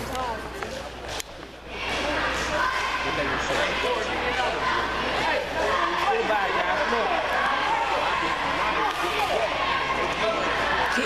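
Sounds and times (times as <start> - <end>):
crowd talking and calling: 0.0 - 11.0.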